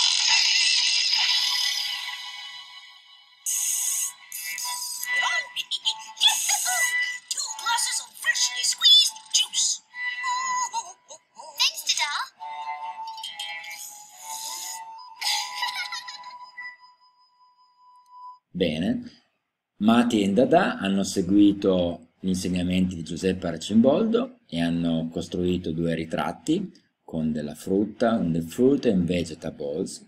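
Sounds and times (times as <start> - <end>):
background music: 0.0 - 19.2, 19.8 - 30.0.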